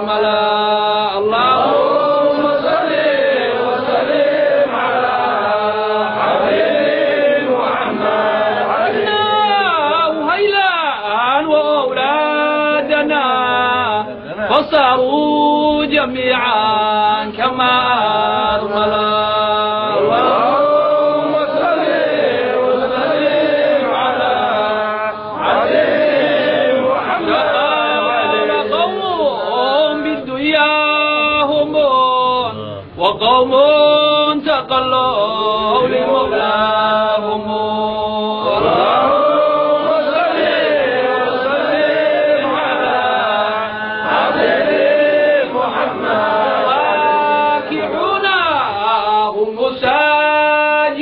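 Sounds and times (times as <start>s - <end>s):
man chanting devotional verse: 0.0s - 6.3s, 7.2s - 25.5s, 26.6s - 51.0s.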